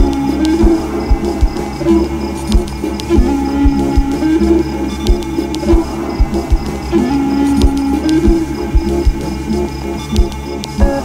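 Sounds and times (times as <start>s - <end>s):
repeating low melodic phrase: 0.0s - 11.0s
bass drum thumps: 5.1s - 6.8s.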